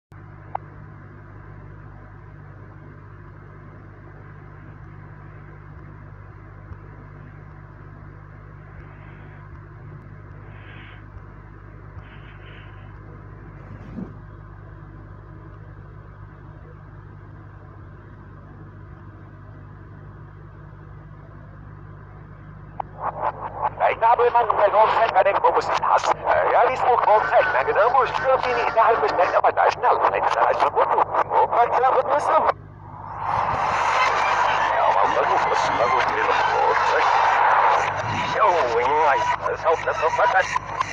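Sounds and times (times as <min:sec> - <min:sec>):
low electrical hum and hiss: 0:00.2 - 0:33.5.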